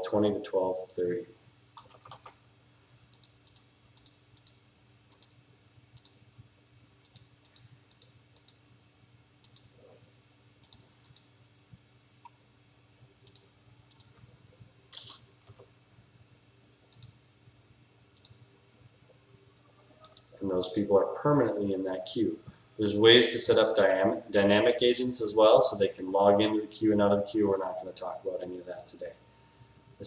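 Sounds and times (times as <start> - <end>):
computer mouse clicking: 1.8 - 2.4, 3.0 - 5.4, 6.0 - 6.2, 7.0 - 8.6, 9.4 - 9.8, 10.6 - 11.3, 13.2 - 14.2, 14.9 - 15.7, 16.9 - 17.2, 18.2 - 18.4, 20.0 - 20.4.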